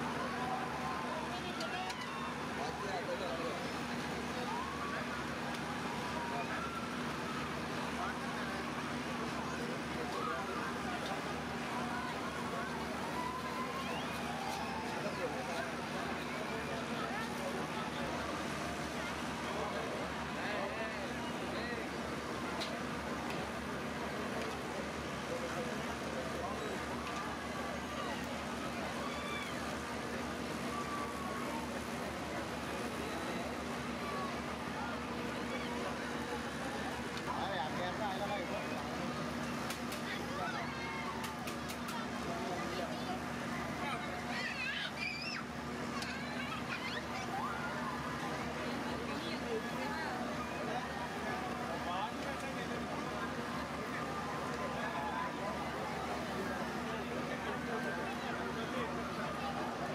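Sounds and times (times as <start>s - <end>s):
crowd babble: 0.0s - 59.9s.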